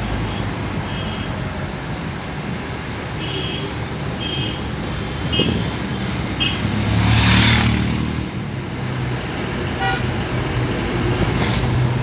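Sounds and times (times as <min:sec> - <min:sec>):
vehicle engine and road noise: 0:00.0 - 0:12.0
car horn toots: 0:09.8 - 0:10.1.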